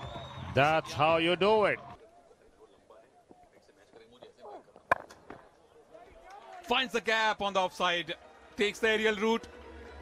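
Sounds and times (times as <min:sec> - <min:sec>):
cricket bat striking ball: 0:04.9 - 0:05.4.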